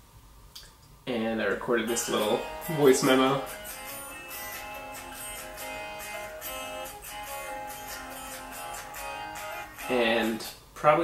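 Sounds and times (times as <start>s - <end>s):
acoustic guitars playing: 1.6s - 10.5s.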